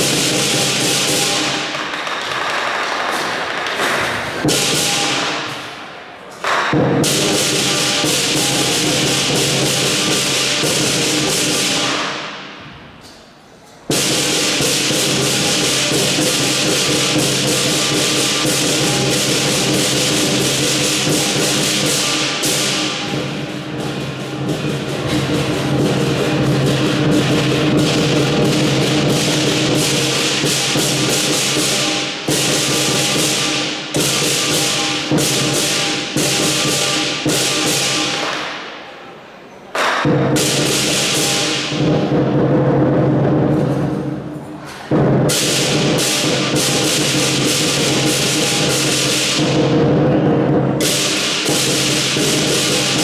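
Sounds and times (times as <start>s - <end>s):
clashing cymbals: 0.0s - 2.5s, 3.1s - 13.2s, 13.9s - 53.0s
lion dance drum: 0.0s - 5.6s, 6.4s - 12.6s, 13.9s - 38.8s, 39.8s - 53.0s.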